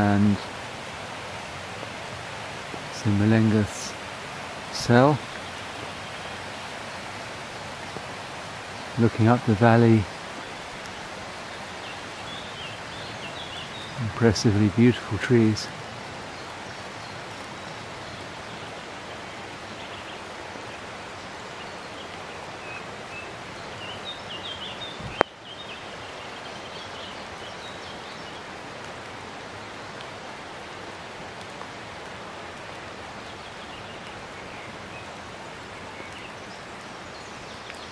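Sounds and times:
waterfall rushing: 0.0 - 37.9.

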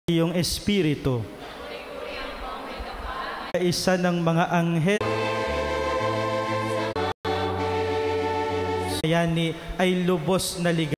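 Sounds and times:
church music held chords: 5.0 - 10.2.

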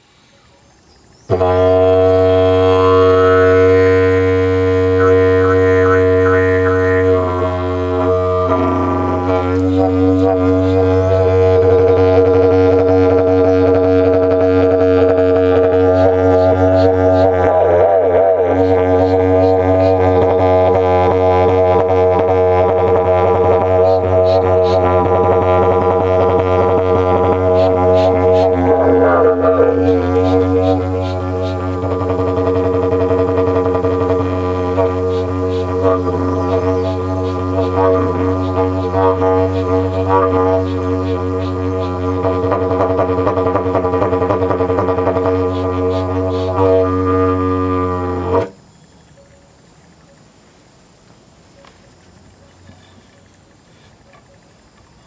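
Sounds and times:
didgeridoo overtone accents: 0.7 - 50.2
didgeridoo drone: 1.3 - 49.4.

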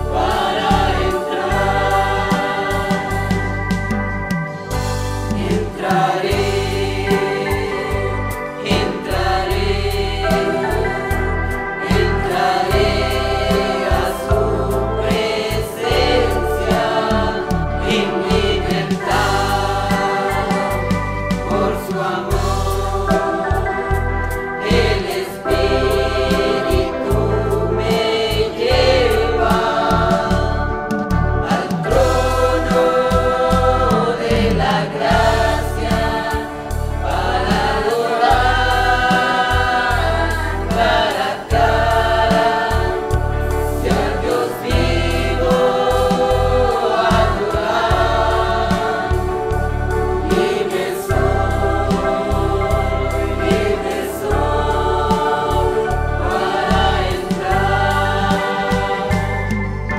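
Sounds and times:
backing accompaniment: 0.0 - 59.9
choir singing worship song: 0.0 - 59.9
steady bass: 0.0 - 59.9.

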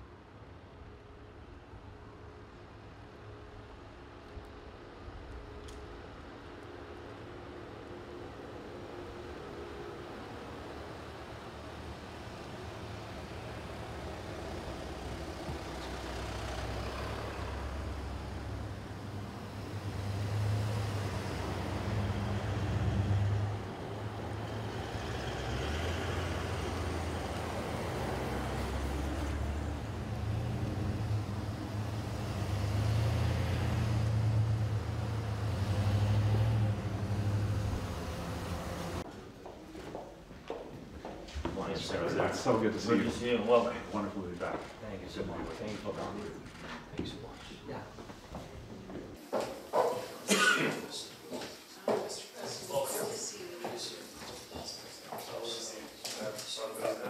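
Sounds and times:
vehicles driving past: 3.2 - 39.5, 41.1 - 57.0.

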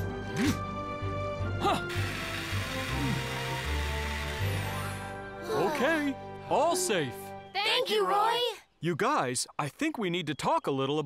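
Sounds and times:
cartoon hose spray hissing: 1.7 - 5.1.

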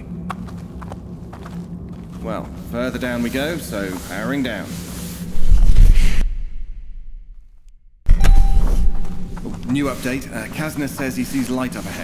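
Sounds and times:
low cave drone: 0.0 - 12.0.

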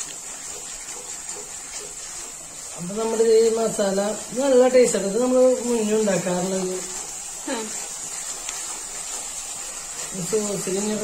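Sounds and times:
paste sizzling in hot oil: 0.0 - 11.0.

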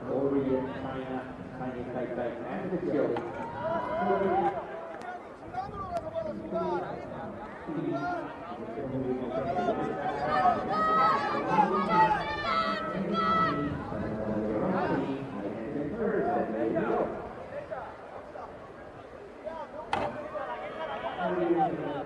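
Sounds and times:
background chatter: 0.0 - 22.0
people talking and calling out: 0.0 - 22.0.

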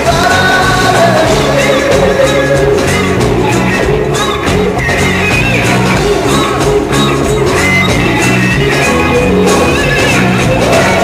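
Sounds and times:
drum and cymbal hits: 0.0 - 11.0.

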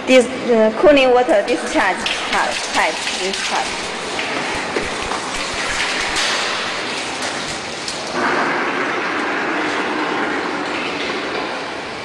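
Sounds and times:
water rushing from hose and splashing: 1.5 - 10.1.

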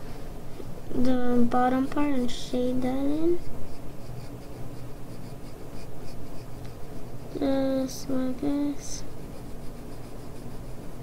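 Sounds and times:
pencil scratching on paper: 2.2 - 11.0.

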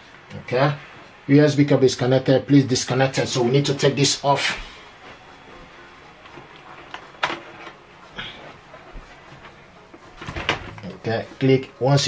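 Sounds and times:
cable handling knocks: 6.8 - 7.8.

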